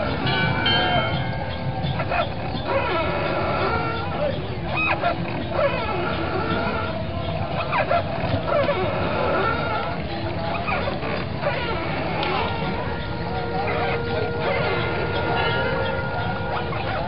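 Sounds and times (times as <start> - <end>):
dogs barking and yelping: 0.0 - 17.0
scattered voices: 0.0 - 17.0
steady held tones: 0.0 - 17.0.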